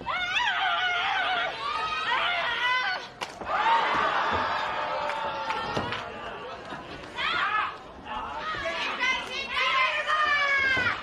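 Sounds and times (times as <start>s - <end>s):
crowd chatter: 1.2s - 11.0s.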